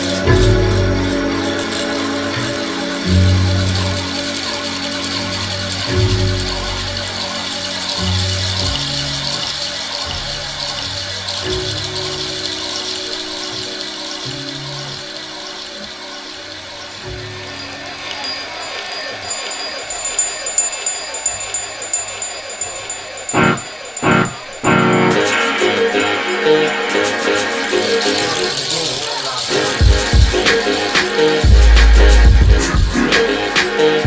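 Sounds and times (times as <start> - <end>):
steady hiss: 0.0 - 34.0.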